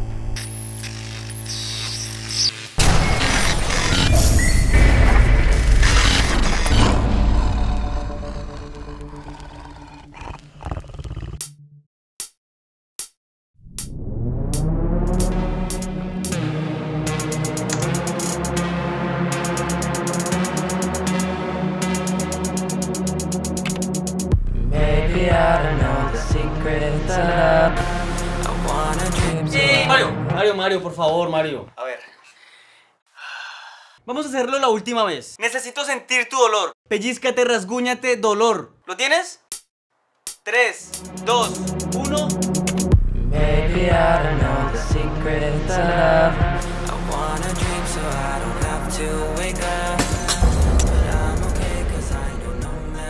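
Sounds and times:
loud noisy impact: 2.8 - 7.9, 50.0 - 53.0
person sighing: 32.1 - 34.0.

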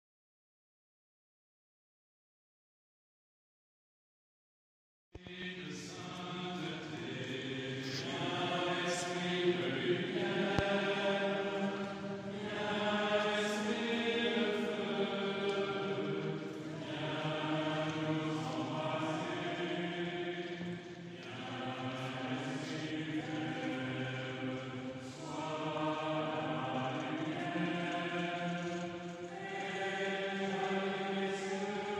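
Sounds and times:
liturgical chant singing: 5.2 - 31.9.

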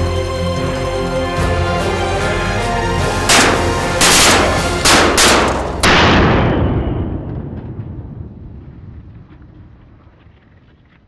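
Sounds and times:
background music: 0.0 - 6.0
shotgun shots: 3.3 - 7.0.

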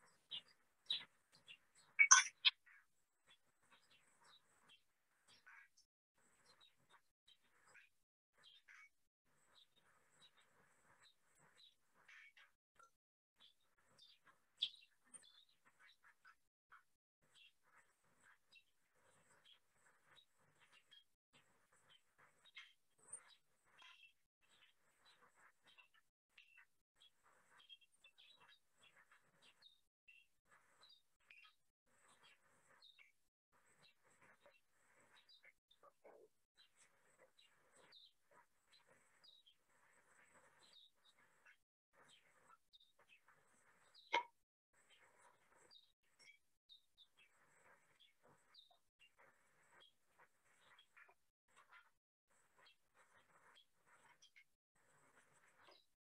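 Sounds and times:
faint bird chirps: 0.0 - 56.0.

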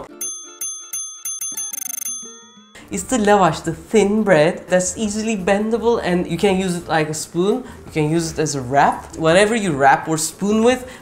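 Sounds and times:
bell dings: 0.0 - 3.1
rapid bell trill: 0.0 - 3.2.

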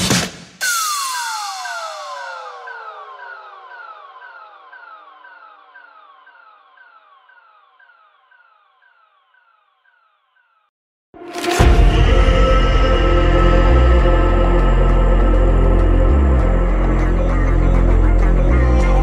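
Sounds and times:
electronic dance music: 0.0 - 9.9
synthesizer falling pitch sweeps: 0.6 - 8.6
slow downward synth glide: 0.6 - 9.1.

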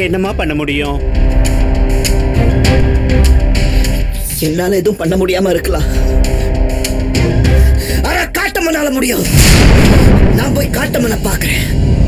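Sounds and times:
loud boom with deep rumble: 9.3 - 12.0.

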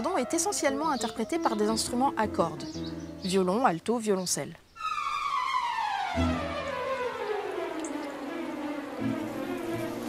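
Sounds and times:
bumblebee buzzing drone: 6.1 - 10.0.

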